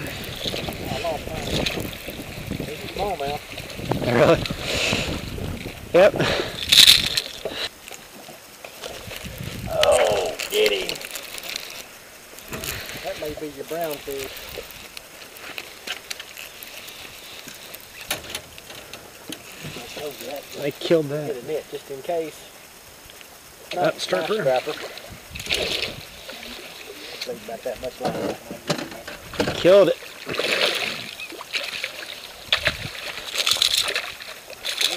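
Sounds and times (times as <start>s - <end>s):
fish thrashing and splashing: 0.0s - 20.4s, 29.6s - 34.9s
light water sounds: 0.0s - 34.9s
fish splashing at surface: 30.0s - 34.9s.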